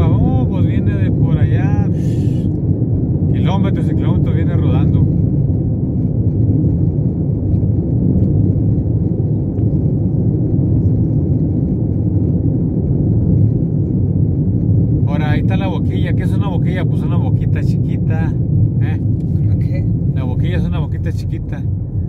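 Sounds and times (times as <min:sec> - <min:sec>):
road and engine rumble in car: 0:00.0 - 0:22.0.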